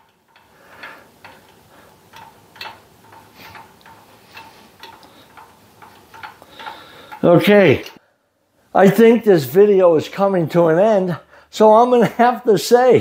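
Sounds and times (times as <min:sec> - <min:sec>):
faint regular ticking: 0:00.0 - 0:08.0.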